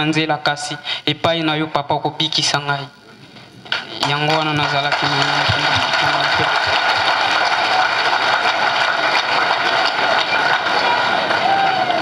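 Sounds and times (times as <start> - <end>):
man speaking into a microphone: 0.0 - 3.0, 3.9 - 6.5
crowd applauding: 3.7 - 12.0.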